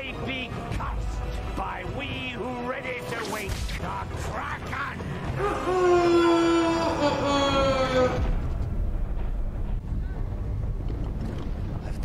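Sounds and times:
man screaming: 5.3 - 8.3
steady low rumble: 8.2 - 12.0.

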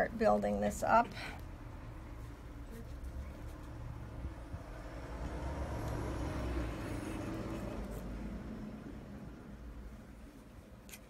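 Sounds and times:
road vehicle passing by: 0.8 - 10.9.

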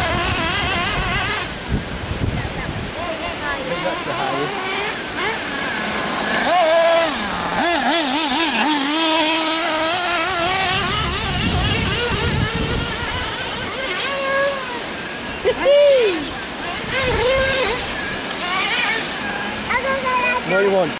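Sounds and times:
model car engine revving: 0.0 - 1.6, 3.1 - 20.4.

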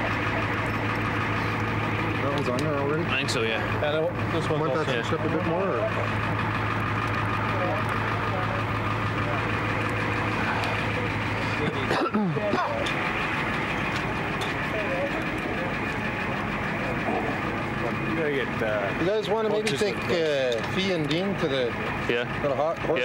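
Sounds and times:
ambulance engine idling: 0.0 - 23.0.

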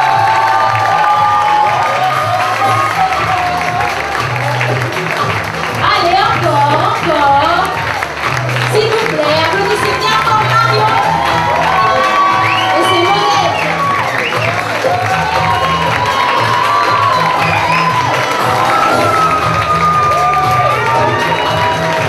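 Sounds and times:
crowd cheering and shouting: 0.0 - 22.0
loud music with pulsing bass: 0.0 - 22.0.

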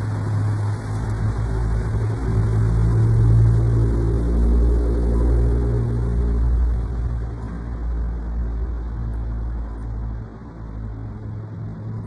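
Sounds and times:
car passing by: 0.0 - 10.9.

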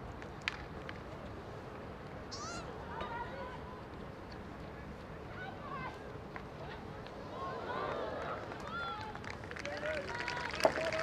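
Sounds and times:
crowd murmur: 6.6 - 11.0.

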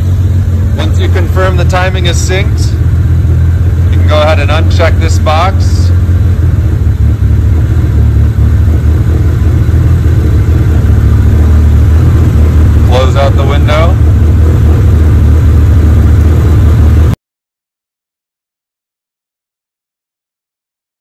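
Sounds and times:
car engine idling: 0.0 - 17.2.

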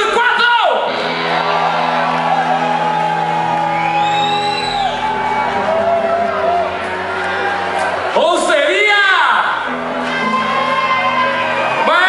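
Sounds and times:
live band sustained chord: 0.8 - 8.7
person whooping: 2.0 - 7.8.

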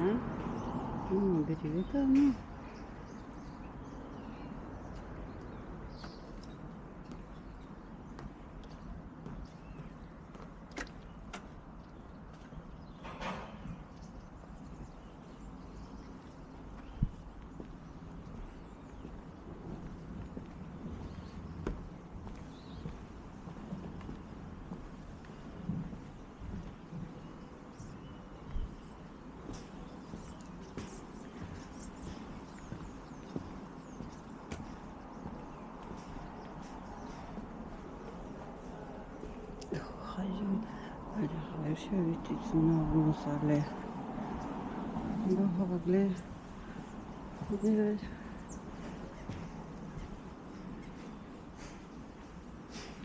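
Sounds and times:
footsteps on wooden boards: 4.9 - 39.9, 46.3 - 53.0.

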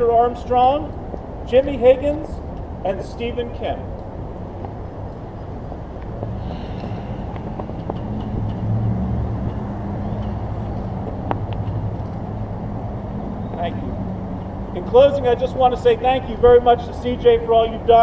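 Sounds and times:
traffic rumble: 0.0 - 18.0.

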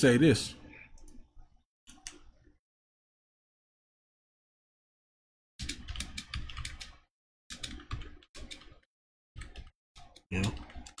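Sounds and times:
rapid typing on keyboard: 5.6 - 11.0.

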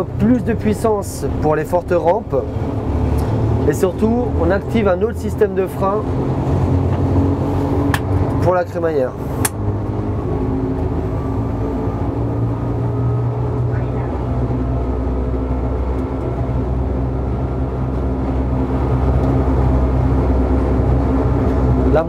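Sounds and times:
railcar running hum: 0.0 - 22.0
steady whining tones: 0.0 - 22.0.

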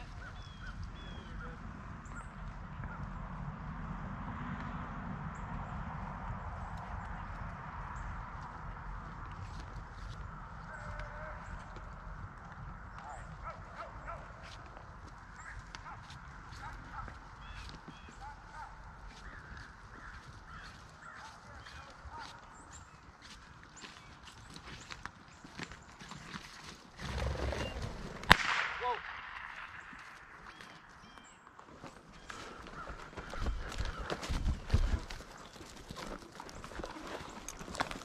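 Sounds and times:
horses walking through dry grass: 0.0 - 38.0
sharp crack: 28.0 - 30.9.

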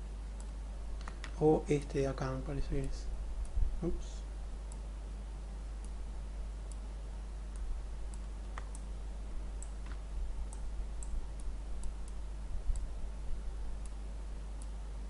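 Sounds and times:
steady low hum: 0.0 - 15.0
computer mouse clicks: 7.5 - 8.9, 9.6 - 12.9.

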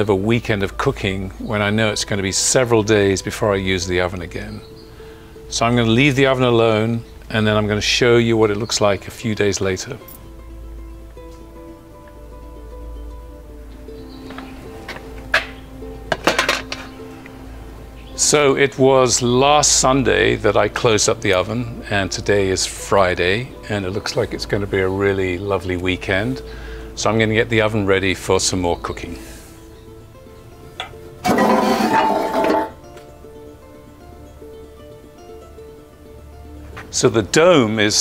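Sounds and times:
background music: 0.0 - 38.0
metal bucket clanking: 16.1 - 17.0, 30.8 - 32.8
wire handle clinking: 16.1 - 17.0
oven door scraping and clinking: 31.2 - 32.8.

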